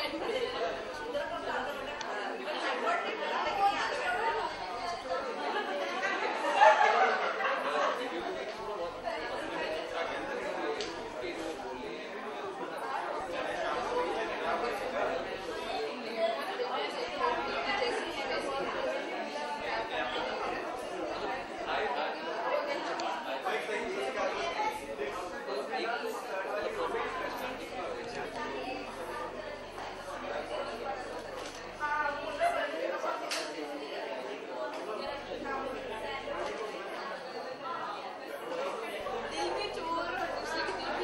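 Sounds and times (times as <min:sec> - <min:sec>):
background chatter: 0:00.0 - 0:41.0.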